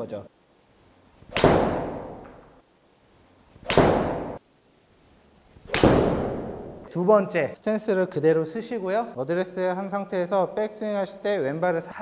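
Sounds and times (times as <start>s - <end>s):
golf club striking ball: 1.3s - 2.4s, 3.6s - 4.4s, 5.6s - 6.9s.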